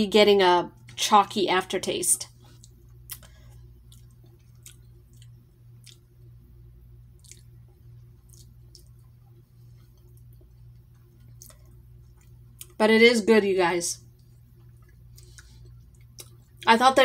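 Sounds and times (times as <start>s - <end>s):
low steady hum: 0.0s - 17.0s
wet mouth clicks and lip smacks: 2.6s - 3.3s, 7.2s - 7.5s.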